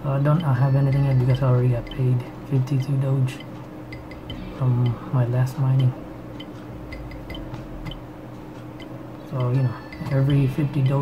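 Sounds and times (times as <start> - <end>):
low background hum: 0.0 - 11.0
light ticks and clicks: 0.3 - 11.0.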